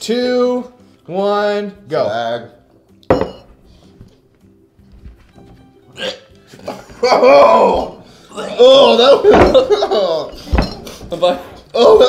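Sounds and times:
faint background music: 0.0s - 12.0s
glass clinking on wooden table: 3.1s - 3.6s, 10.4s - 11.0s.

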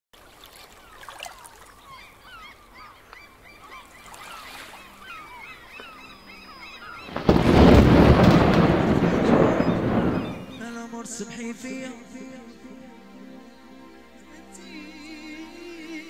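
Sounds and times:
birds calling: 0.2s - 11.6s.

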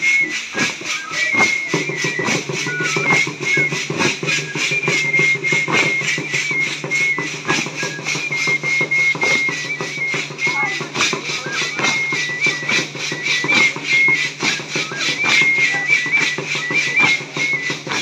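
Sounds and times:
fast drumbeat: 0.0s - 18.0s
high whistle-like melody: 0.0s - 18.0s.

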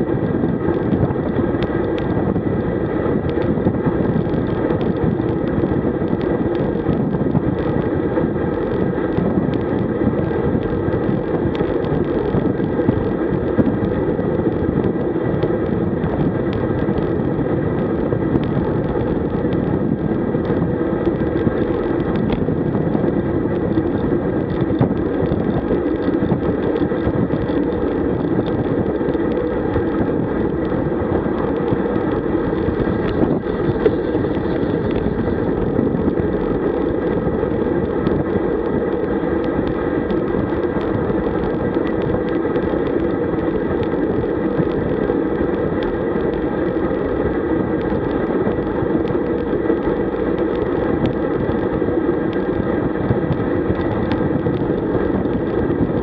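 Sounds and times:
road noise: 0.0s - 56.0s
wind rush on microphone: 0.0s - 56.0s.

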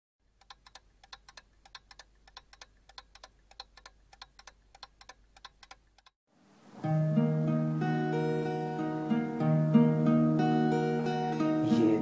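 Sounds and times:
faint rapid ticking clicks: 0.3s - 6.2s.

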